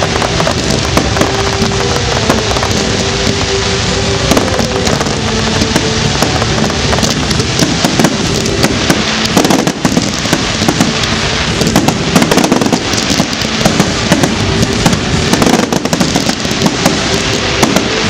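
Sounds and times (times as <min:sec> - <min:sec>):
fireworks bangs and crackles: 0:00.0 - 0:18.0.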